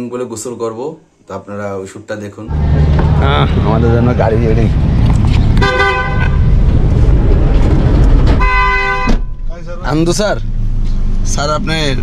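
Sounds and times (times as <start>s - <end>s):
low rumble of street traffic: 1.6s - 12.0s
vehicle horn tooting: 5.6s - 6.5s, 8.4s - 9.3s.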